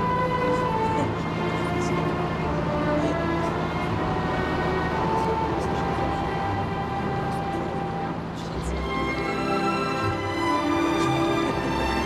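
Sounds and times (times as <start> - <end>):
low rumble of boat engines: 0.0 - 12.0
orchestral music with held notes: 0.0 - 12.0.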